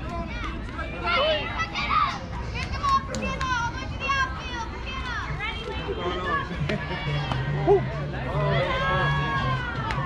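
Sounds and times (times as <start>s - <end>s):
children cheering and calling out: 0.2s - 6.4s.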